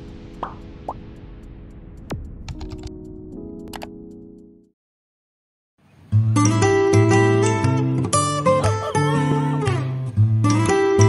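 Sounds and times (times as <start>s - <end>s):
rising pops: 0.4s - 1.2s
keyboard typing clicks: 2.5s - 3.0s, 3.6s - 4.0s.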